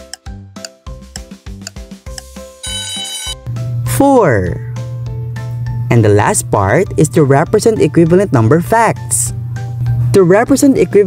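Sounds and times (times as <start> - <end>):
background music with steady beat: 0.0 - 3.8
alarm clock ringing: 2.6 - 3.4.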